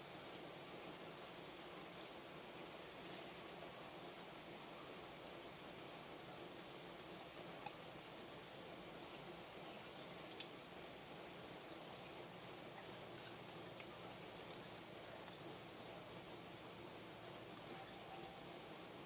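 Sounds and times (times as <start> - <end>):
steady background hiss: 0.0 - 19.0
faint small clicks: 7.6 - 10.6, 12.0 - 15.4.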